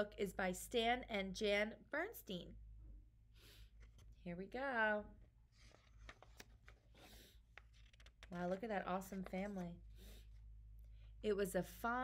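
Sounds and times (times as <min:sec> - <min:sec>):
book pages rustling and clicking: 0:05.5 - 0:09.8.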